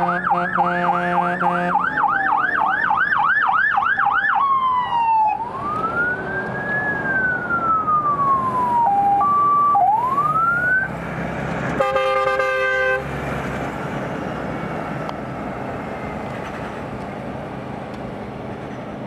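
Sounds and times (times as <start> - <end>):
horn blast: 0.0 - 2.0, 11.8 - 13.1
fire engine siren: 0.0 - 16.2.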